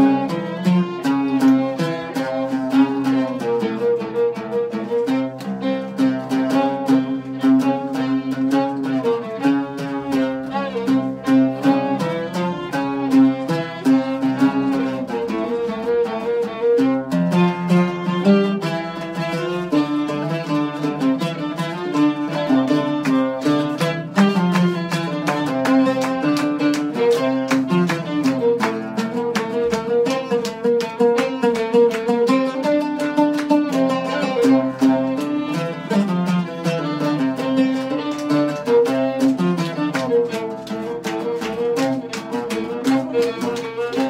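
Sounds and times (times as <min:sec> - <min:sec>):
bowed violin: 0:00.0 - 0:44.0
plucked oud notes: 0:00.0 - 0:44.0.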